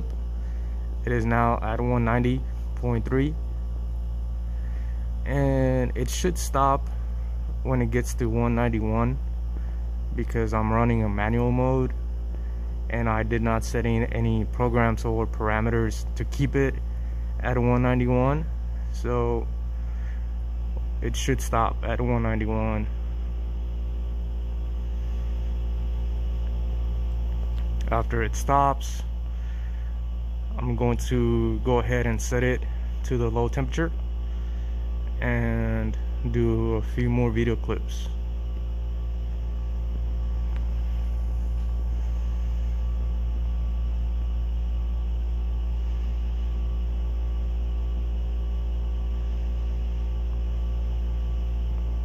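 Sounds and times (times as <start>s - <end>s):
machine hum with low drone: 0.0s - 52.0s.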